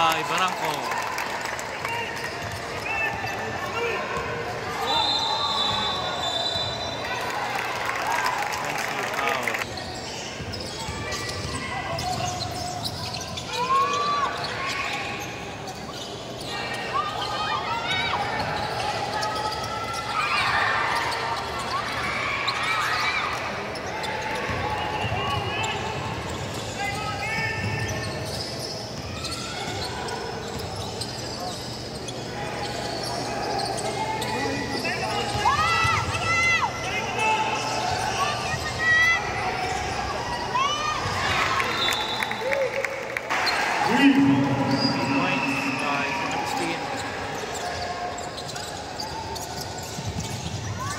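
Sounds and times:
crowd talking and calling out: 0.0s - 50.9s
sneakers squeaking: 1.9s - 7.3s, 9.3s - 42.6s, 43.3s - 50.9s.

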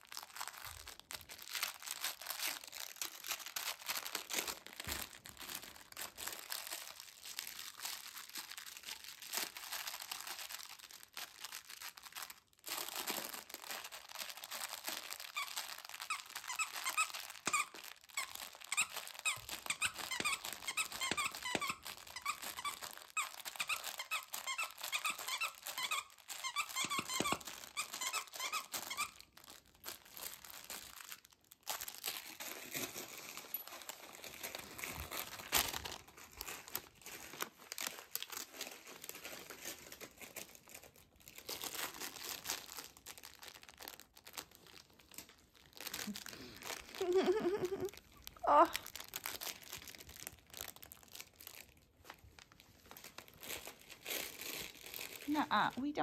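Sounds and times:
rustling and crinkling: 0.0s - 56.0s
dog toy squeaking: 15.3s - 29.3s.

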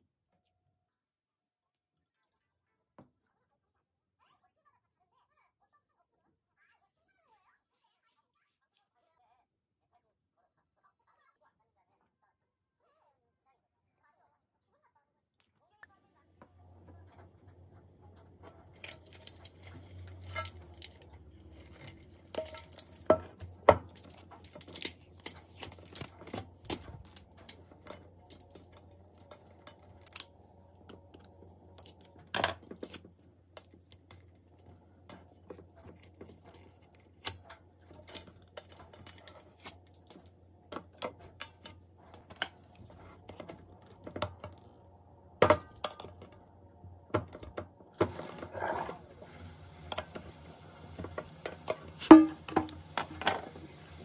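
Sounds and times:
metal tin rubbing: 18.7s - 30.2s
metal tin knocking on countertop: 21.6s - 24.9s, 51.0s - 53.5s.

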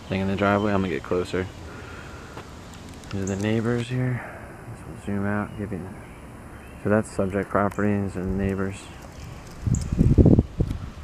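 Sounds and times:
steady background noise: 0.0s - 11.0s
low rumbling wind buffet on microphone: 8.2s - 11.0s.

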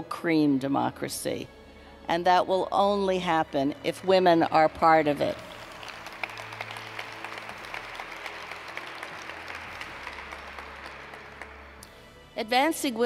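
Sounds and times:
audience applauding: 4.2s - 11.9s.

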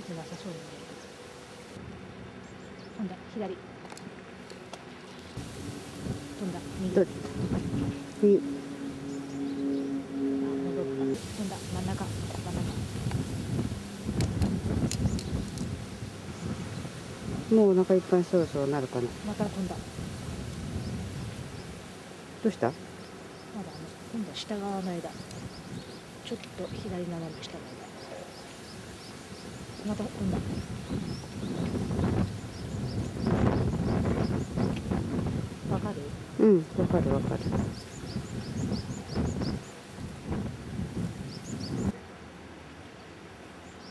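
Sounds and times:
wind rumbling on microphone: 0.0s - 42.0s
small bird chirping: 14.8s - 15.7s, 22.4s - 34.8s, 37.2s - 39.8s.

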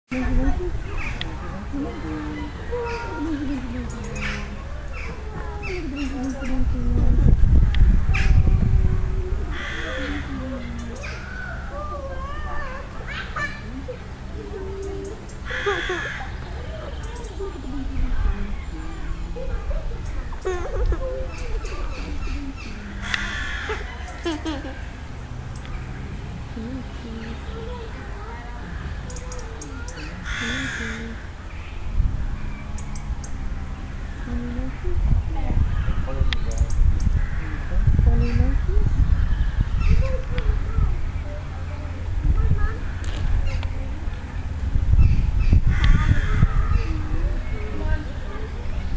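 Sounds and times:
low background rumble: 0.1s - 48.9s
crow cawing: 9.5s - 10.3s, 15.5s - 16.4s, 23.0s - 23.9s, 30.2s - 31.2s, 37.2s - 37.6s, 45.7s - 46.7s.

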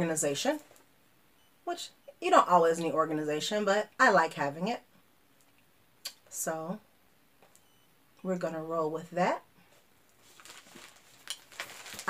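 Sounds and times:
denim pouch rustling: 10.2s - 12.0s.

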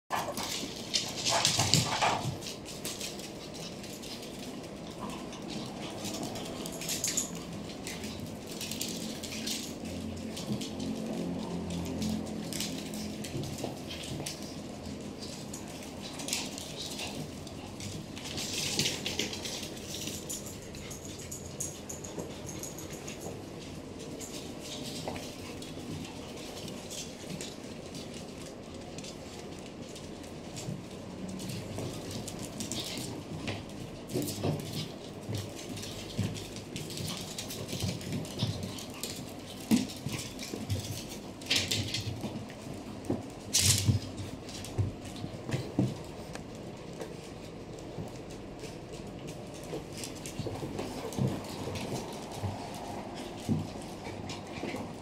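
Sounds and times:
small dogs playing: 0.1s - 55.0s.

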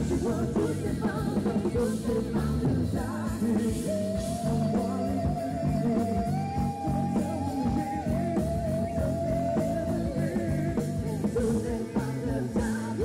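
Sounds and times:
live rock band playing: 0.0s - 13.0s
person singing: 0.0s - 13.0s.

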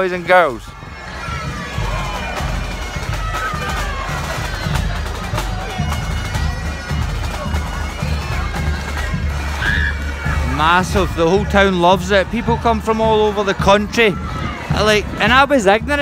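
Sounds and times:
drum beating: 0.0s - 16.0s
wind instrument melody: 0.0s - 16.0s.

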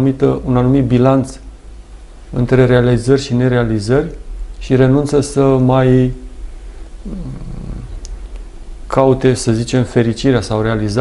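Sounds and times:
steady low hum: 0.0s - 11.0s
man's creaky hesitation sound: 7.0s - 8.1s.

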